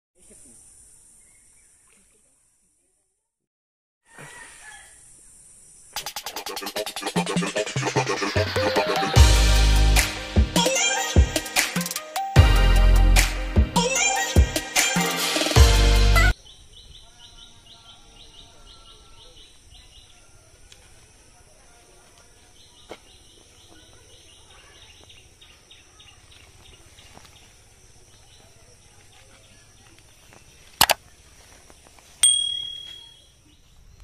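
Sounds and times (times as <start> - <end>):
faint steady high hiss: 4.9 - 6.0
loud music: 6.0 - 16.3
notification bell ding: 32.2 - 33.2
bird chirping high: 32.2 - 33.6.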